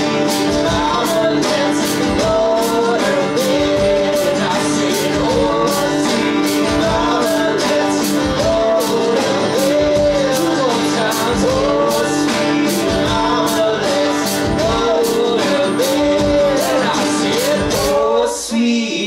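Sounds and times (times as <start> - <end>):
electric guitar melody bending: 0.0 - 18.1
country-rock band playing: 0.0 - 18.4.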